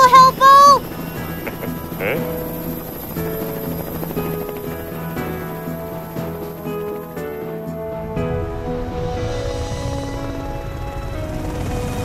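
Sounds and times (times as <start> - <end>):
cartoon helicopter rotor: 0.0 - 7.1
background music: 0.0 - 12.0.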